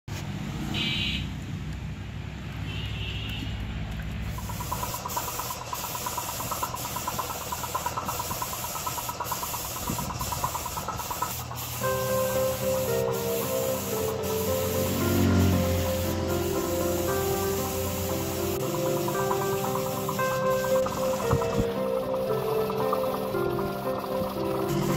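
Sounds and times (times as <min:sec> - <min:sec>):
paint spray gun hissing: 0:04.3 - 0:24.9
background music with melody: 0:11.8 - 0:24.9.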